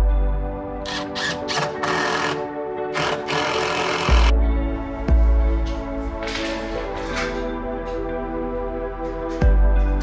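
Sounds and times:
background music with held notes: 0.0s - 10.0s
cordless drill driving screws: 0.9s - 2.4s, 3.0s - 4.3s.

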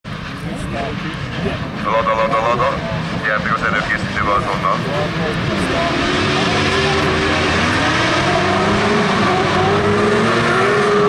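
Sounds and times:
engines idling: 0.1s - 11.0s.

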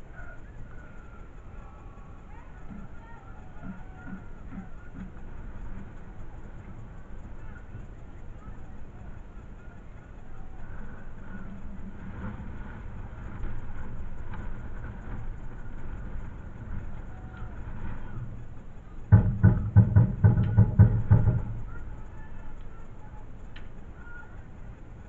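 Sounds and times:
low outdoor background noise: 0.0s - 25.0s
loud thumps: 19.0s - 22.0s.

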